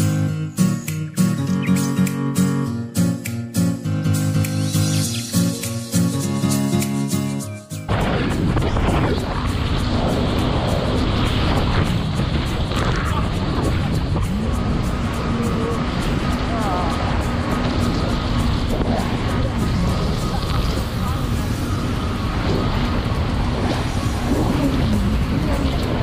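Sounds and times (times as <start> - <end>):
background music: 0.0 - 25.7
water rushing: 4.1 - 6.8, 7.9 - 26.0
jet ski engine running: 7.9 - 26.0
wind on microphone: 7.9 - 26.0.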